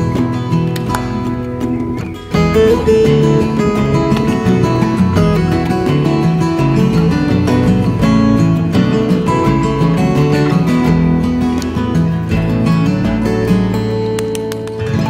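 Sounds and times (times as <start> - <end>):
acoustic guitar music: 0.0 - 15.0.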